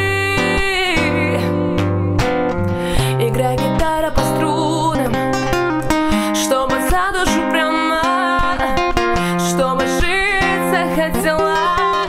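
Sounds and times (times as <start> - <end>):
fingerstyle acoustic guitar: 0.0 - 12.0
woman singing: 0.0 - 12.0.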